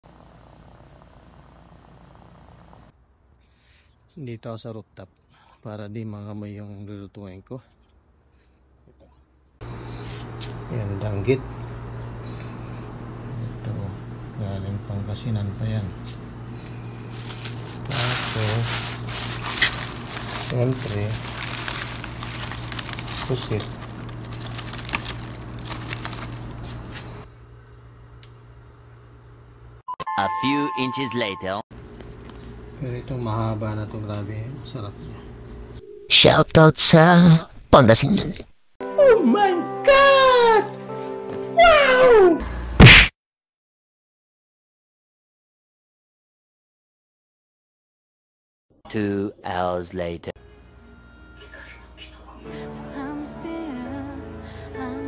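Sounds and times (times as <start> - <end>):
gas burner humming and hissing: 9.6 - 29.6.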